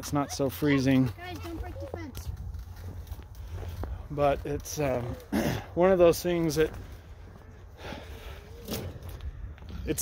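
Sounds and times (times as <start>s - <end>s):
man talking: 4.0s - 6.8s, 9.8s - 10.0s.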